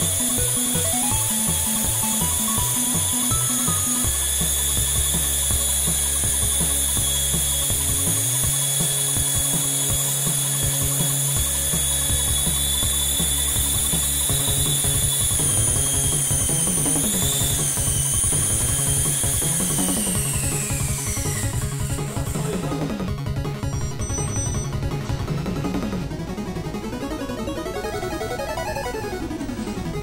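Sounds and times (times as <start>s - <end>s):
electronic music with heavy bass: 0.0s - 30.0s
small electric rotors whining: 0.0s - 30.0s.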